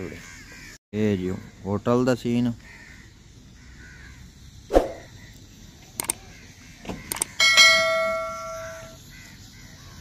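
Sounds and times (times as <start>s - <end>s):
mouse clicks: 6.0s - 6.2s.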